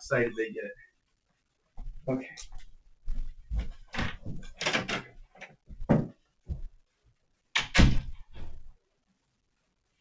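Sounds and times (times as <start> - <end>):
footsteps: 1.7 - 6.9
door knocks and scrapes: 3.9 - 5.1, 5.8 - 6.2
door closing thump: 7.6 - 8.6.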